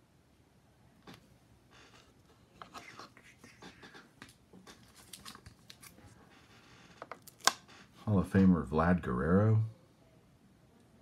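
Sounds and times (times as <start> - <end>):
cards rustling: 2.0 - 7.9.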